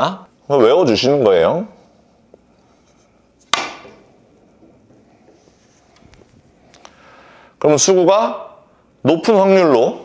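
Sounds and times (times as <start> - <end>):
cue striking billiard ball: 3.4 - 5.1.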